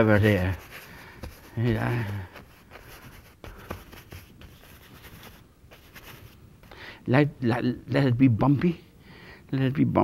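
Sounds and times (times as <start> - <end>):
brush scrubbing on canvas: 0.0 - 6.4.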